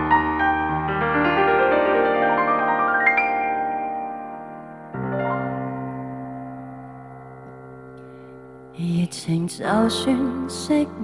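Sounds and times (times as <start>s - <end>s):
piano chord on keyboard: 0.0s - 11.0s
woman singing: 8.8s - 11.0s.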